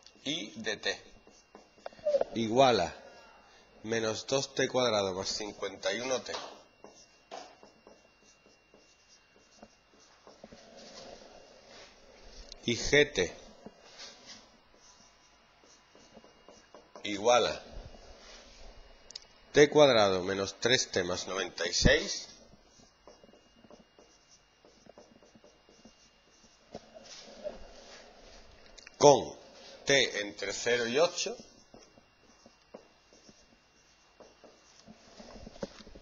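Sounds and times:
marker strokes on whiteboard: 0:00.0 - 0:02.9, 0:03.8 - 0:19.0, 0:19.6 - 0:36.0.

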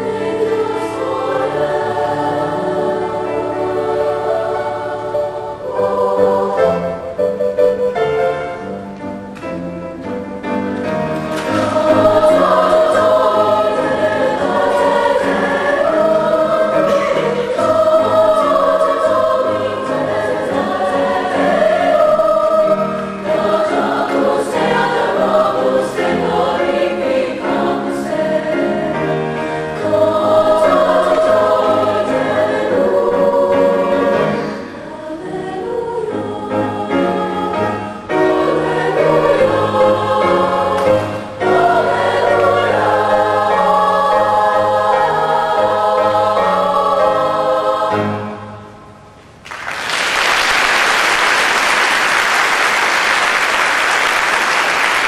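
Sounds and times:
women's choir singing: 0:00.0 - 0:08.8, 0:10.5 - 0:49.0.

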